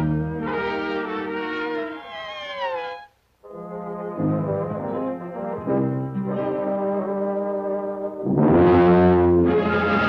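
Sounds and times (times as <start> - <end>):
brass low held notes: 0.0 - 10.0
orchestral cartoon music: 0.0 - 10.0.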